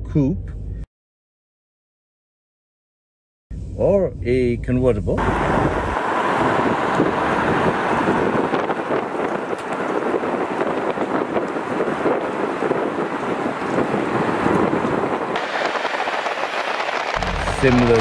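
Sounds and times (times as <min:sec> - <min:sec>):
man speaking: 0:03.8 - 0:05.2, 0:17.2 - 0:18.0
wind and road noise: 0:05.1 - 0:18.0
wind buffeting microphone: 0:05.2 - 0:18.0.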